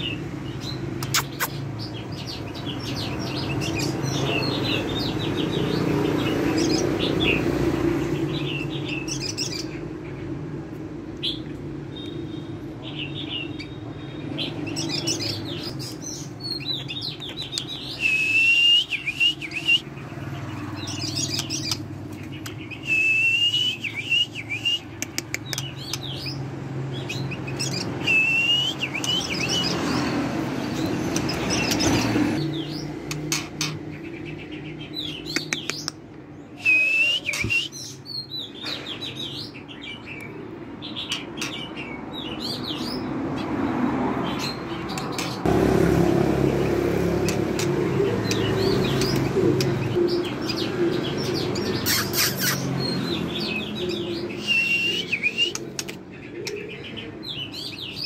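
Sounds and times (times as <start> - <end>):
bird singing whistled phrases: 17.9 - 19.9, 22.7 - 25.0, 28.0 - 29.7, 36.6 - 38.2, 54.4 - 55.6.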